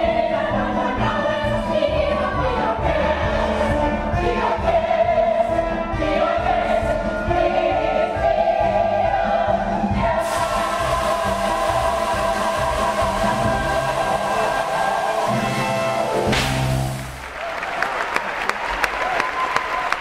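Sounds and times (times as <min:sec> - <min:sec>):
chorus singing in harmony: 0:00.0 - 0:16.8
pit orchestra playing: 0:10.0 - 0:17.2
steady hiss: 0:10.2 - 0:17.2.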